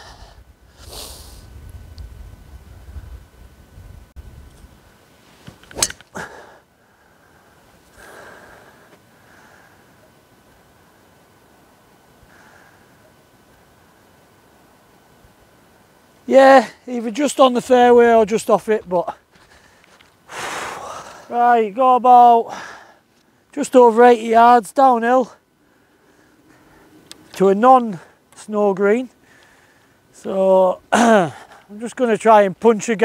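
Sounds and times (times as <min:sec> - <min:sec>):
wind rumbling on microphone: 0:00.0 - 0:05.7
golf club striking ball: 0:05.5 - 0:06.1
short breath: 0:29.2 - 0:30.0.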